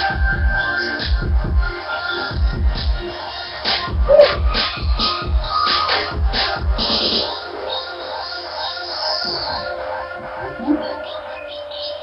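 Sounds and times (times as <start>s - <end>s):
electronic dance music: 3.7s - 6.0s
high synth over held tone: 4.1s - 4.4s.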